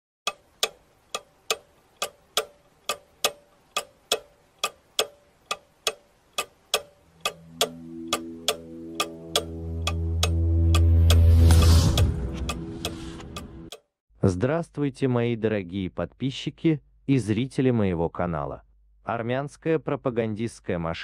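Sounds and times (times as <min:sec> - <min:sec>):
clock ticking: 0:00.3 - 0:13.9
low droning held tones: 0:07.0 - 0:13.7.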